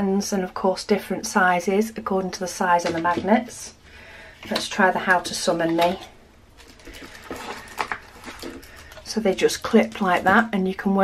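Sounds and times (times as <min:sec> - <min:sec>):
plastic cover crinkling: 0:05.8 - 0:10.5.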